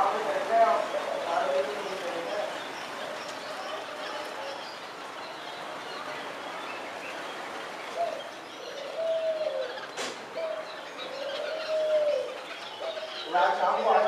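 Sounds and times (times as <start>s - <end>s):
small birds chirping: 0.0s - 14.0s
dove cooing: 7.9s - 13.3s.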